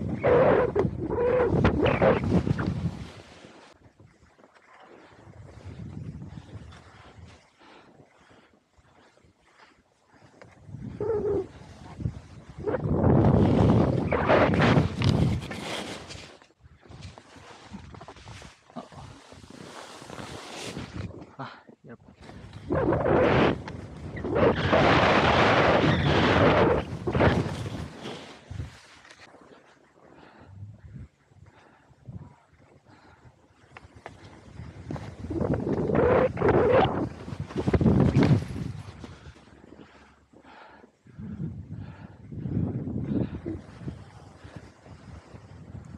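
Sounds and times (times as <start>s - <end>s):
wind rushing over microphone: 0.0s - 3.4s, 5.2s - 7.4s, 10.6s - 16.2s, 22.2s - 28.8s, 33.8s - 39.6s, 41.1s - 45.9s.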